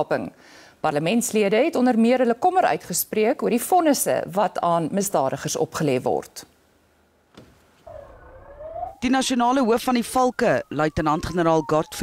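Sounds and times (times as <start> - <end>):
police siren wailing: 7.9 - 12.0.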